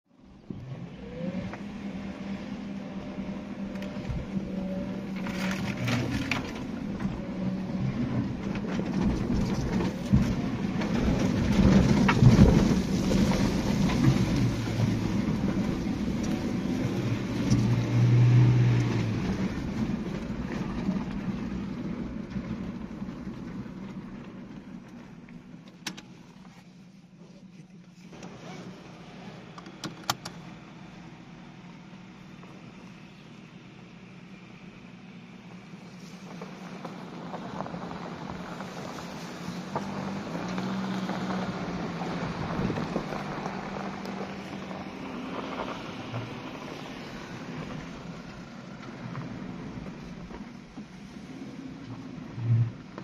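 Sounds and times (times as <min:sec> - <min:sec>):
car engine at low speed: 0:00.0 - 0:53.0
body and suspension rattles: 0:04.0 - 0:18.0.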